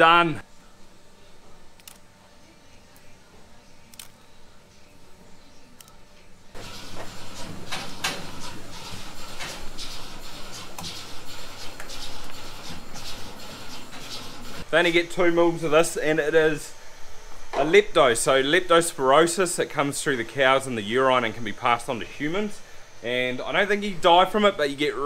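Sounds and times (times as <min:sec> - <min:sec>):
low mechanical hum: 0:00.0 - 0:25.0
machinery clicks and knocks: 0:06.6 - 0:14.7.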